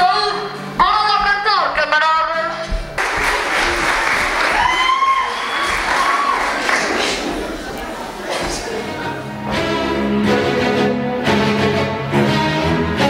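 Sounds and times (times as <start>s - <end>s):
person speaking: 0.0s - 3.0s, 6.7s - 9.4s
audience clapping and cheering: 2.9s - 9.0s.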